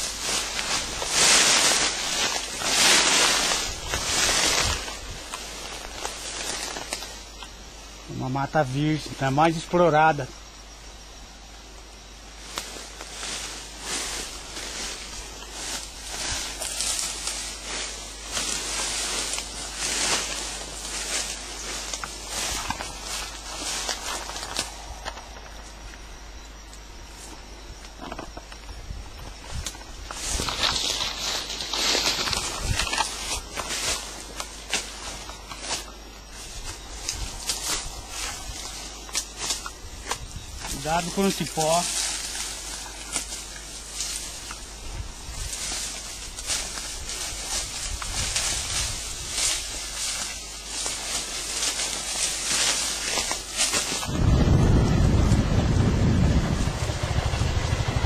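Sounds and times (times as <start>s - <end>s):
footsteps in undergrowth: 0.0s - 11.2s, 12.0s - 58.0s
leaves and branches rustling: 0.0s - 58.0s.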